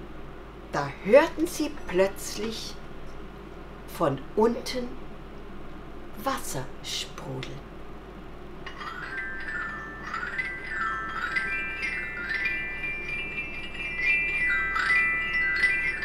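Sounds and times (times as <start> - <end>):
glockenspiel runs: 8.6 - 16.0.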